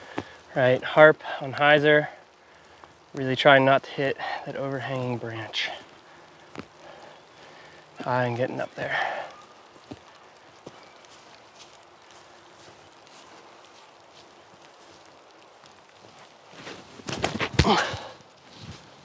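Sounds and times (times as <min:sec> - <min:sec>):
footsteps crunching through dry leaves: 0:08.6 - 0:19.0.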